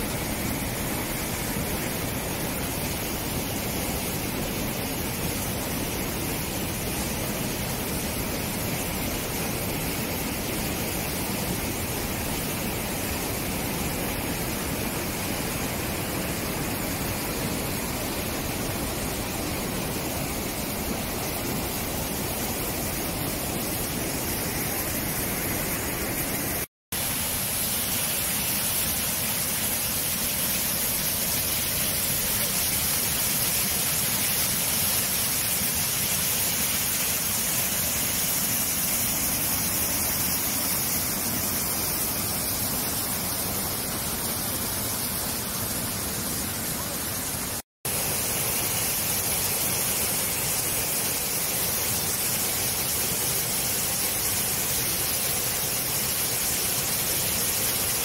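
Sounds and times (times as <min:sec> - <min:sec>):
hissing jet of water: 0:00.0 - 0:58.0
whitewater rushing over boulders: 0:00.0 - 0:58.0.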